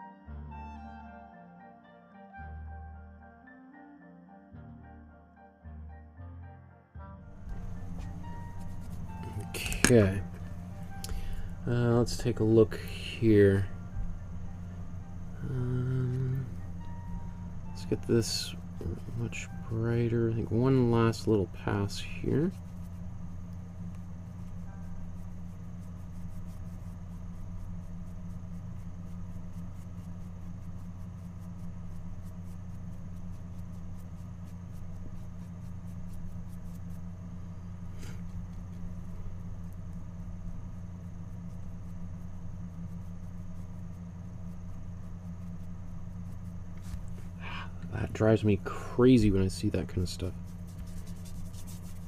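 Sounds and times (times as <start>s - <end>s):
low room hum: 0.0s - 52.0s.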